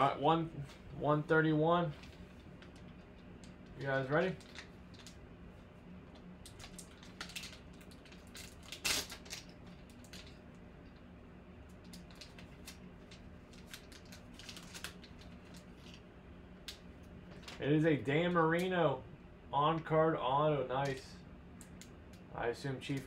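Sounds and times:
foil pack crinkling: 1.9s - 5.2s, 6.4s - 11.0s, 11.8s - 17.7s.

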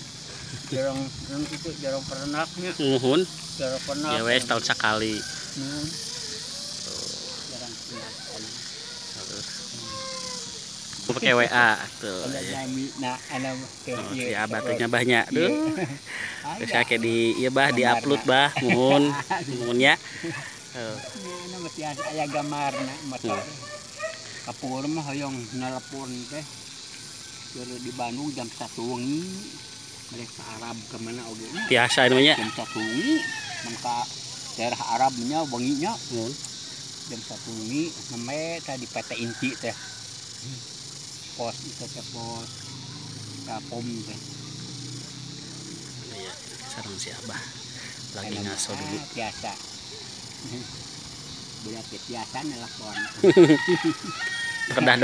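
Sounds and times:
men talking: 0.0s - 10.4s, 11.0s - 26.7s, 27.5s - 39.8s, 40.4s - 42.7s, 43.3s - 44.4s, 45.5s - 55.0s
steady high hiss: 0.0s - 55.0s.

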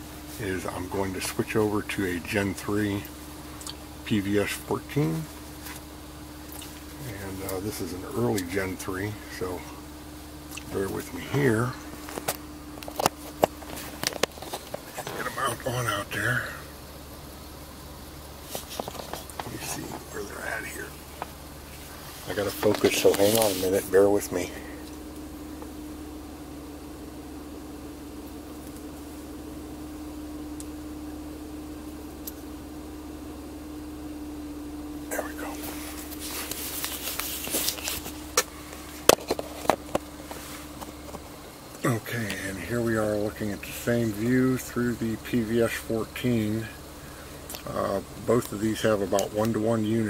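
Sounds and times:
steady low hum: 0.0s - 50.0s
handling knocks and clicks: 36.1s - 41.3s.

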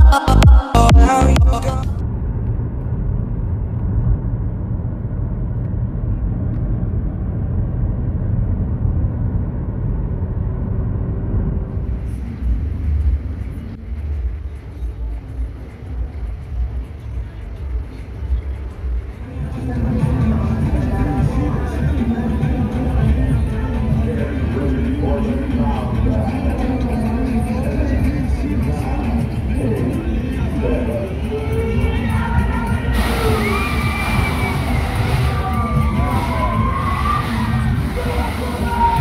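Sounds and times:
car road and engine rumble: 1.4s - 39.0s.

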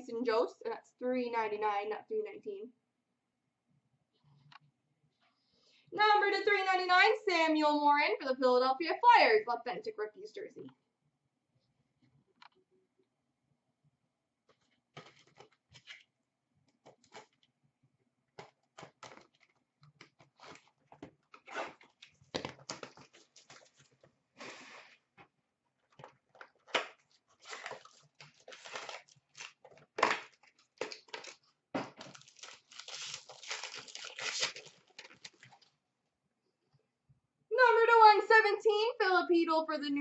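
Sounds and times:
wrapper and cardboard crinkling: 14.5s - 16.1s, 18.3s - 25.0s, 25.8s - 35.8s
packaging ripping: 16.8s - 17.5s, 18.4s - 24.6s, 26.0s - 35.7s.

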